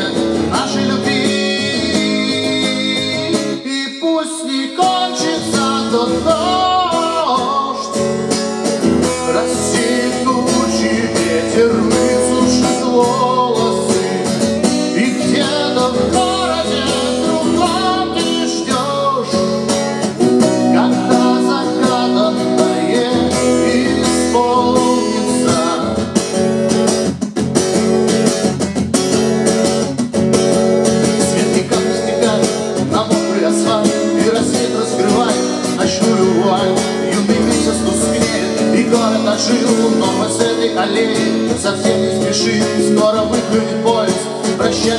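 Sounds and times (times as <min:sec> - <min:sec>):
man singing: 0:00.0 - 0:26.7, 0:30.8 - 0:44.9
acoustic guitar strumming: 0:00.0 - 0:44.9.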